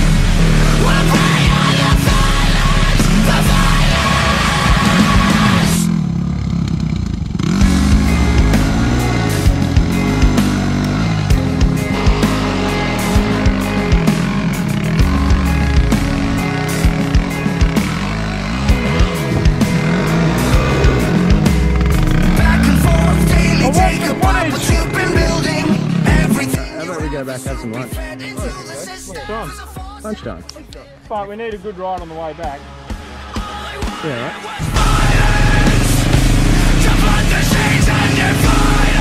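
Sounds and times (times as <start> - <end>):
background music: 0.0 - 6.4, 7.3 - 39.0
dirt bike engines revving: 0.0 - 39.0.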